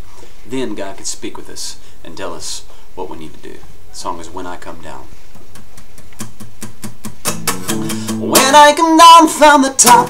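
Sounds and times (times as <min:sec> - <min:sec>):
acoustic guitar strumming: 0:05.5 - 0:10.0.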